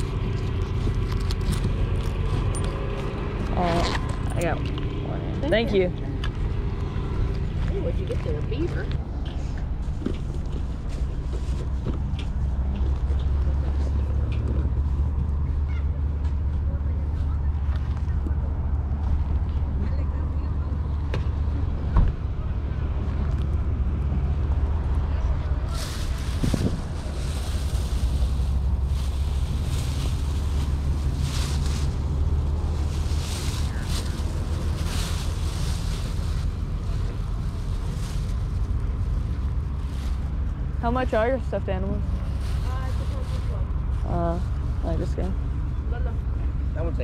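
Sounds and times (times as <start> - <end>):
steady low rumble: 0.0 - 47.0
wind buffeting microphone: 23.0 - 40.8
plush toy rustling: 25.6 - 40.6
plastic bag crinkling: 25.7 - 38.7.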